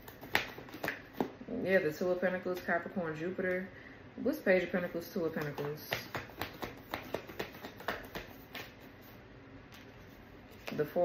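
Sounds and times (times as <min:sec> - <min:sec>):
cards being shuffled: 0:00.0 - 0:01.3, 0:05.2 - 0:11.0.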